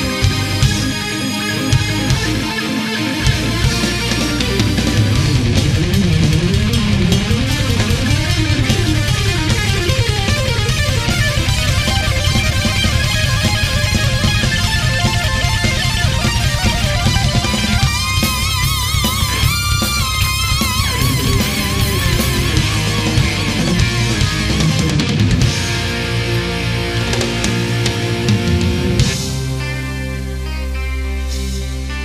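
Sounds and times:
high wavering guitar lead: 0.0 - 32.0
metal band playing live: 0.0 - 32.0.

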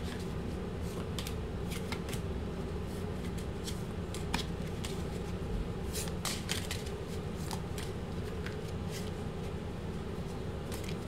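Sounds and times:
cards being shuffled: 0.0 - 2.3, 2.9 - 9.6, 10.3 - 11.0
steady low hum: 0.0 - 11.0.

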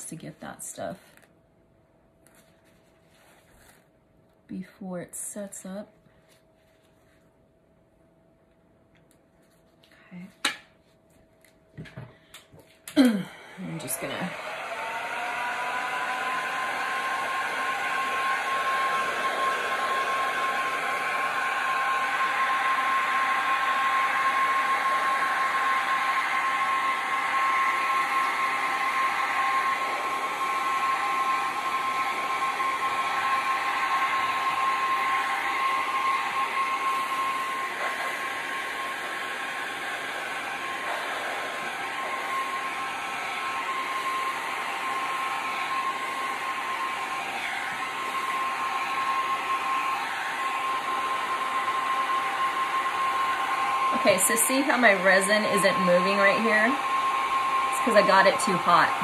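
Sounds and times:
heat gun whine: 11.8 - 59.0.

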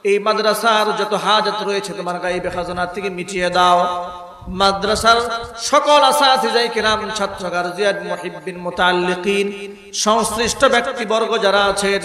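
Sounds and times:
man chanting through amplification: 0.0 - 12.0.

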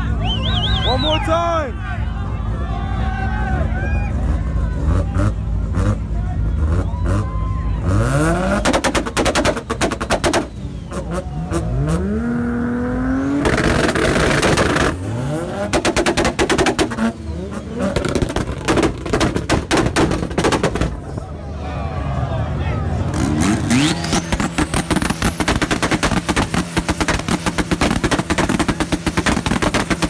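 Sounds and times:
crowd voices: 0.0 - 30.0
exhaust crackle: 3.4 - 21.3, 23.0 - 30.0
car engine revving: 3.4 - 21.4, 22.8 - 30.0.

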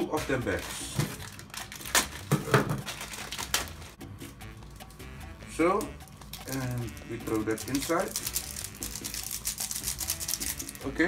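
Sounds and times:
plastic packet crinkling: 0.3 - 4.0, 5.8 - 11.0.

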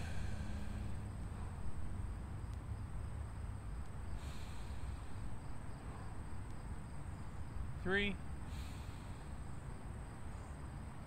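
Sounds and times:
man's deep breath: 0.0 - 1.2, 4.1 - 5.3, 8.5 - 9.5
insects droning: 0.0 - 11.0.

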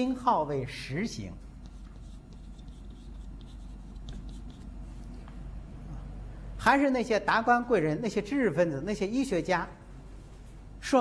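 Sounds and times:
low steady hum: 0.0 - 11.0
chalk scratching on blackboard: 1.6 - 5.1.

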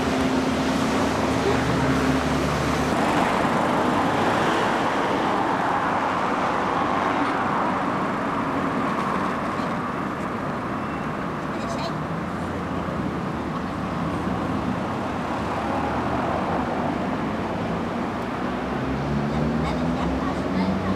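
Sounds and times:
street traffic: 0.0 - 20.9.

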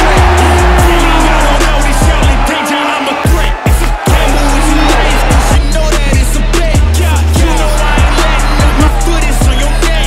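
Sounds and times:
hip-hop music: 0.0 - 10.0.

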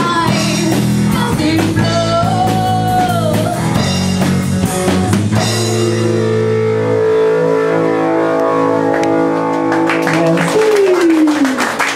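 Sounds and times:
rock band holding a chord: 0.0 - 10.6.

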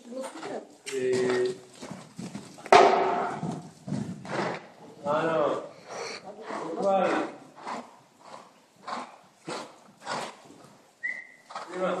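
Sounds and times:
horse cantering on sand: 0.0 - 12.0.

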